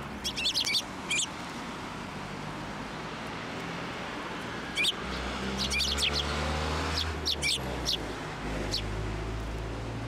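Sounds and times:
sparrows chirping: 0.0s - 1.4s, 4.6s - 9.6s.

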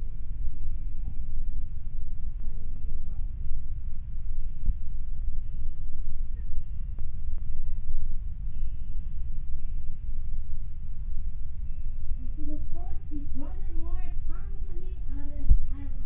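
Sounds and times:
low rumble of room noise: 0.0s - 16.0s.

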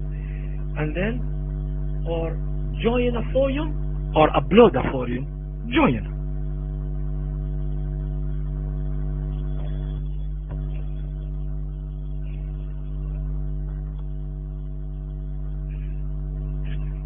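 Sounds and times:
electrical hum: 0.0s - 17.0s.

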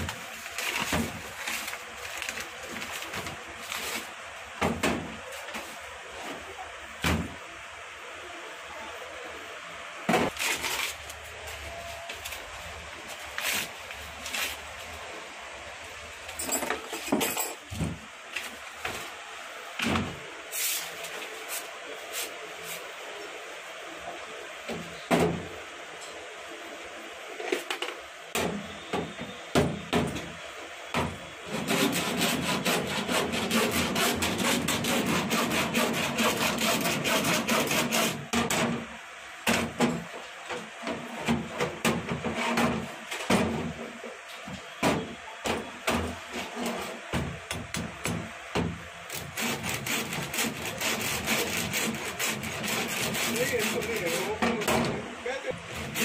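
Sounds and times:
metal file scraping lead: 31.4s - 38.3s, 49.1s - 54.4s.

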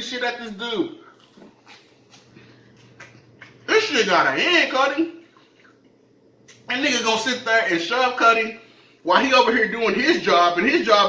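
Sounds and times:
chewing popcorn: 1.0s - 3.7s.

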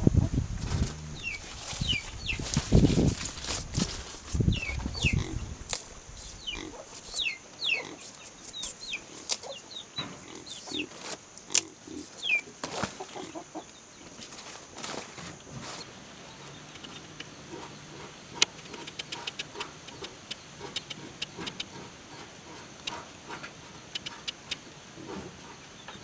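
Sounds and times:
animal grunting: 0.6s - 1.8s, 4.9s - 5.5s, 10.2s - 10.9s
small birds chirping: 0.9s - 3.1s, 4.4s - 11.0s, 11.6s - 14.2s.

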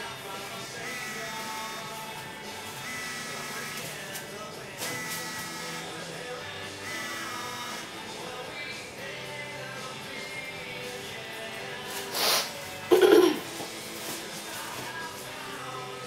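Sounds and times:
music from a radio: 0.0s - 16.0s.

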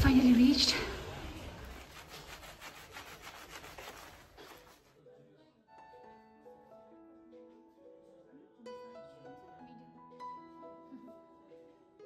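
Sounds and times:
scratchy rubbing on phone microphone: 1.6s - 5.0s.

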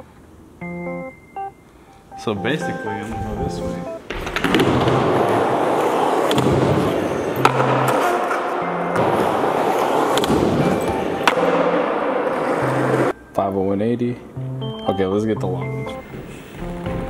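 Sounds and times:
skateboard wheels rolling on concrete: 4.0s - 13.2s
skateboard clack: 4.1s - 13.1s.

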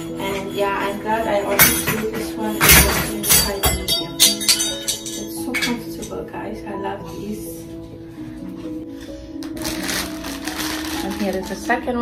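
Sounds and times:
background music: 0.0s - 12.0s
plastic bag crinkling: 9.5s - 12.0s.

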